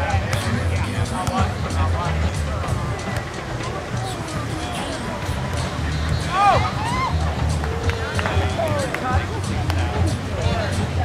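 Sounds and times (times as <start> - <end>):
music with pulsing bass: 0.0 - 11.0
people calling out: 0.0 - 11.0.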